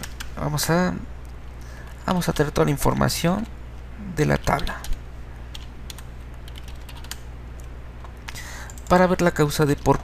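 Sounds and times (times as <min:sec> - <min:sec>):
steady low hum: 0:00.0 - 0:10.0
computer keyboard keystrokes: 0:04.4 - 0:07.7, 0:08.3 - 0:10.0.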